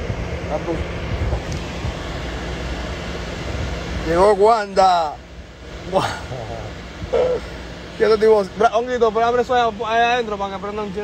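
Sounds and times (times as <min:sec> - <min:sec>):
faint steady hum: 0:00.0 - 0:11.0
low rumble and hiss: 0:00.0 - 0:11.0.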